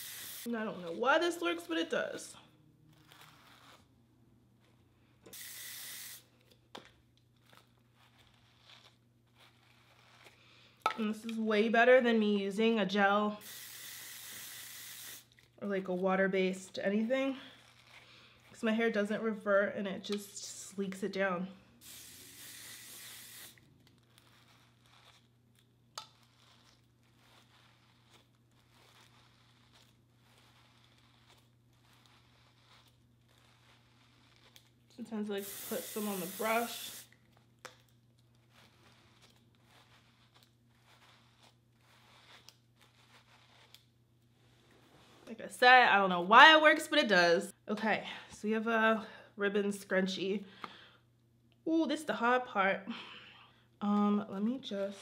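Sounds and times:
aerosol spray hiss: 0:00.0 - 0:00.5, 0:05.3 - 0:06.2, 0:13.4 - 0:15.3, 0:21.8 - 0:23.6, 0:35.4 - 0:37.1
brush strokes on hair: 0:00.0 - 0:02.3, 0:03.0 - 0:03.9, 0:07.5 - 0:19.2, 0:20.1 - 0:25.3, 0:26.0 - 0:37.2, 0:38.4 - 0:43.9.

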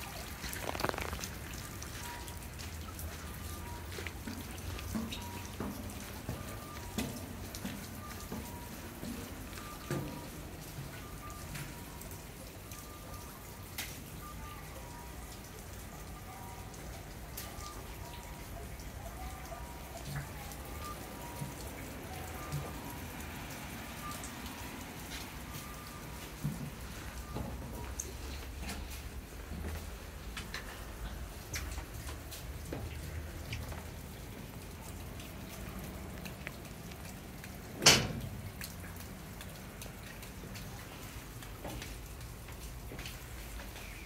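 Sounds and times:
rain dripping and pattering: 0:00.0 - 0:44.0.

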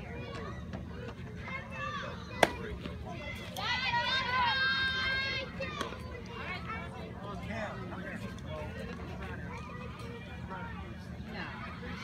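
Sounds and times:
spectators shouting and cheering: 0:01.5 - 0:06.6
baseball bat cracking ball: 0:02.4 - 0:03.0.

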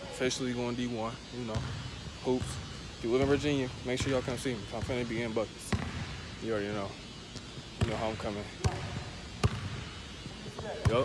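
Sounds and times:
basketball bouncing on gym floor: 0:01.2 - 0:11.0.

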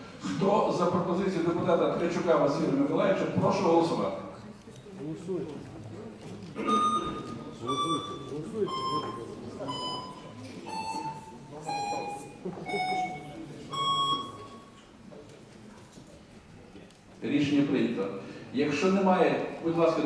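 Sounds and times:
low murmuring voices: 0:00.0 - 0:20.0
electronic beeps: 0:06.6 - 0:14.7.

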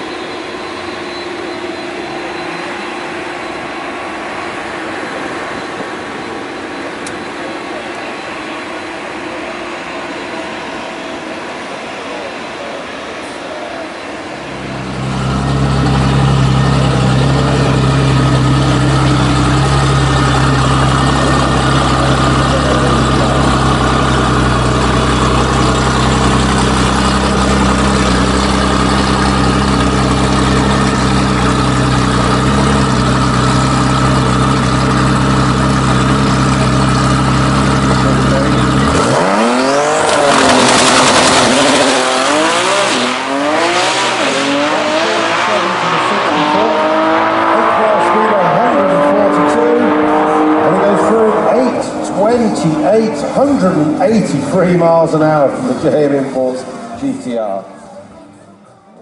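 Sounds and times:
drag car engine running: 0:00.0 - 0:57.6
car accelerating through gear changes: 0:34.2 - 0:54.8.

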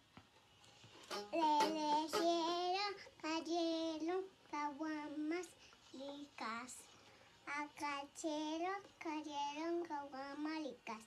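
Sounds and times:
girl singing: 0:01.1 - 0:11.0.

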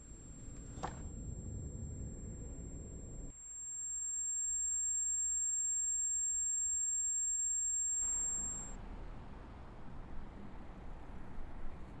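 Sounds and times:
high-pitched electronic ringing tone: 0:00.0 - 0:08.8.

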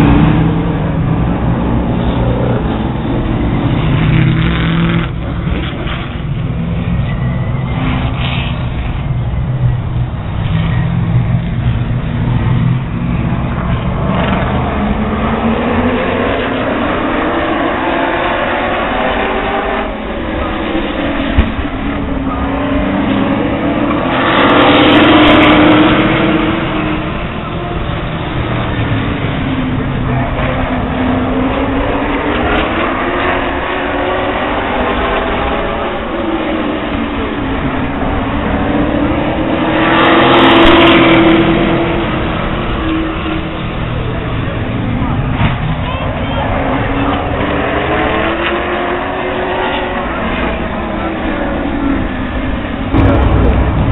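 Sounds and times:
race car engines passing: 0:00.0 - 0:53.9.

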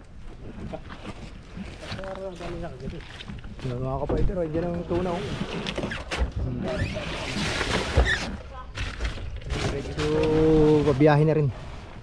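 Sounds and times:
people talking: 0:09.6 - 0:11.5.

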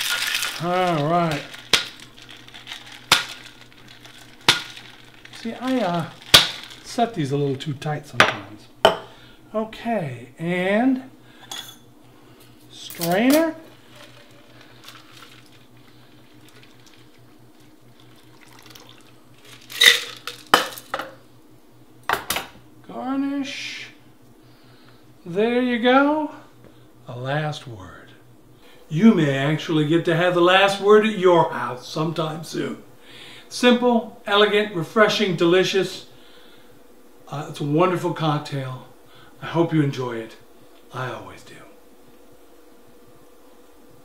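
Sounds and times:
drink pouring into glass: 0:13.7 - 0:20.9
glass and ice clinking: 0:19.7 - 0:21.1.

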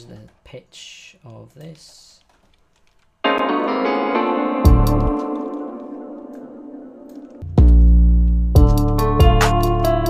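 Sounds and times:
keys chord ringing: 0:03.2 - 0:10.0.

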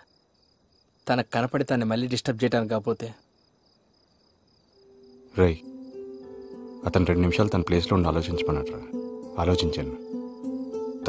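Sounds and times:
crickets chirping: 0:00.0 - 0:11.0
man's voice: 0:06.8 - 0:10.0.

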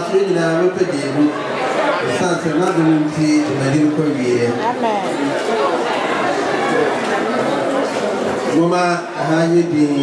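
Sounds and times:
man speaking through microphone: 0:00.0 - 0:04.8, 0:08.4 - 0:10.0.

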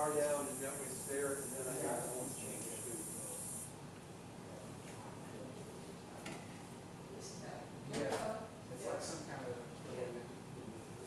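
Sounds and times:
high-pitched hiss: 0:00.0 - 0:03.7.

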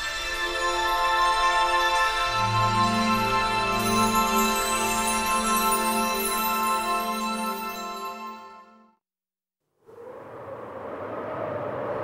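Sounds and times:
noisy rumble: 0:09.8 - 0:12.0.

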